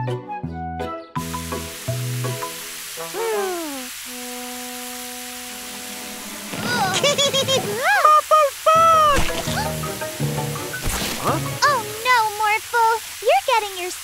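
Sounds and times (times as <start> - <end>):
light background music: 0.0 - 3.2, 8.8 - 12.5
cartoon hose water spray hiss: 1.4 - 14.0
cartoon character vocal sounds: 3.1 - 4.0, 6.6 - 9.8.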